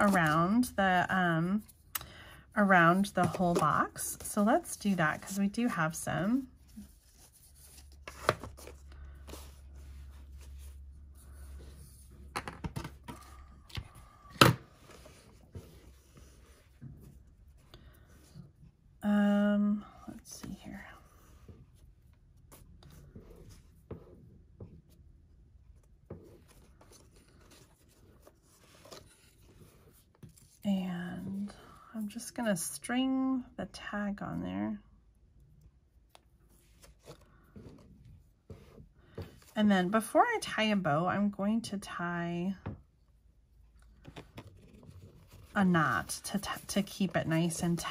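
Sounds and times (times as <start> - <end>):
twine and paper tag rustling: 0.0 - 1.9, 44.0 - 47.9.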